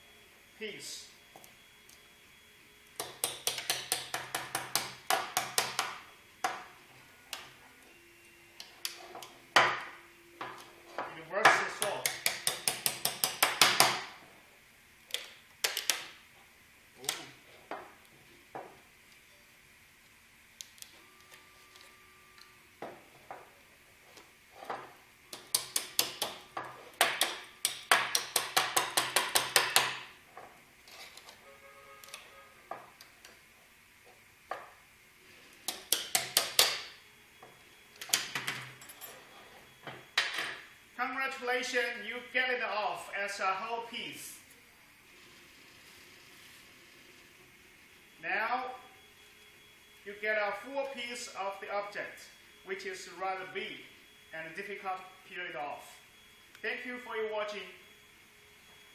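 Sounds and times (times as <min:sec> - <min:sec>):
wrench tapping on print: 0:03.0 - 0:06.6, 0:11.5 - 0:14.0, 0:27.0 - 0:30.0.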